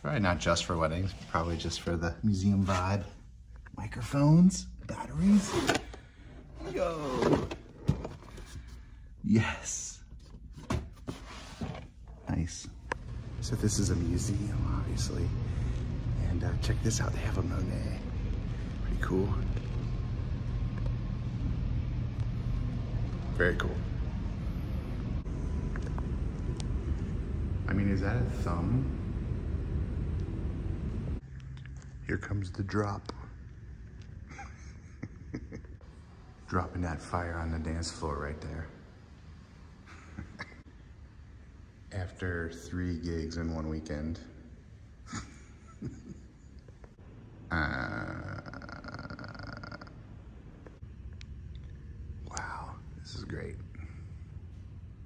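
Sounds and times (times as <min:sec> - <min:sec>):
low background rumble: 0:12.0 - 0:36.6
man belching: 0:47.5 - 0:50.0.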